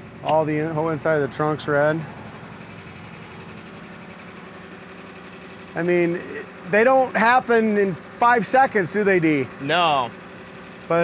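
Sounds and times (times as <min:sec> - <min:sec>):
electric motors whirring: 0:01.0 - 0:11.0.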